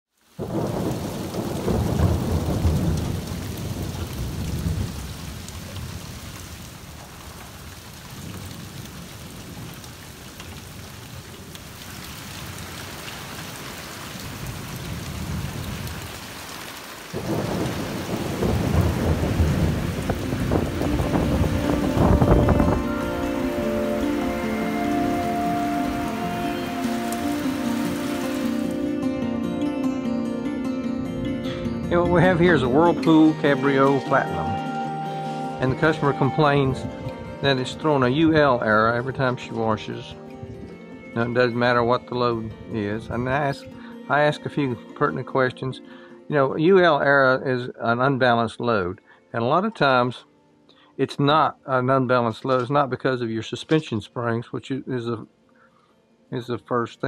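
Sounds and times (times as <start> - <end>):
steady rain: 0.1 - 29.2, 31.1 - 45.2
water dripping off roof edge: 0.2 - 28.8
thunder rolling: 0.4 - 6.2, 17.1 - 28.8
music: 19.6 - 52.7, 55.0 - 57.0.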